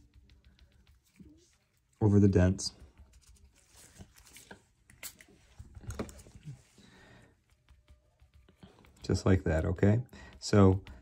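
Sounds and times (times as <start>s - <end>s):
gloved hands tapping and rustling: 0.0s - 11.0s.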